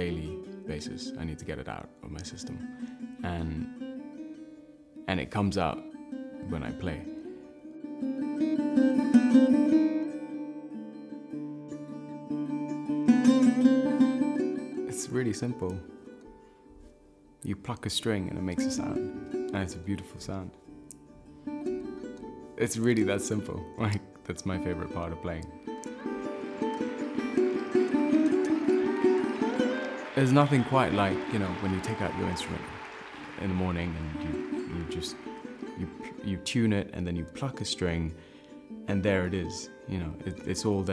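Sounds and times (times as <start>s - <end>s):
plucked sarod notes: 18.0s - 32.7s, 33.3s - 40.9s.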